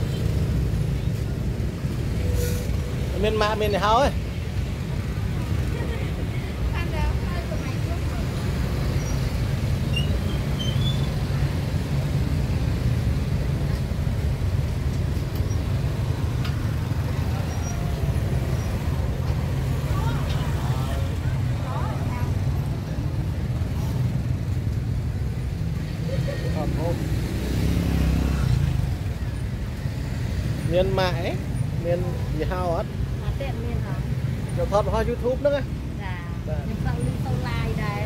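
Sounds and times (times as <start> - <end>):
low rumble of road traffic: 0.0 - 38.0
people talking: 36.0 - 38.0.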